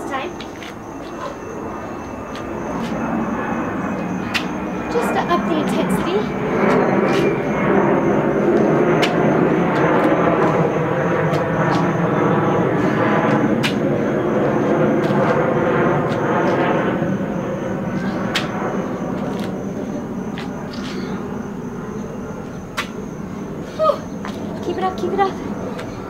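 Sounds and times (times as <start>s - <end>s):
loud engine drone: 0.0s - 26.0s.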